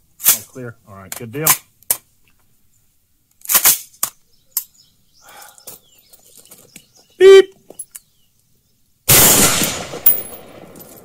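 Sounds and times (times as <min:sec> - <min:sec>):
handling rustle: 0:05.6 - 0:08.1.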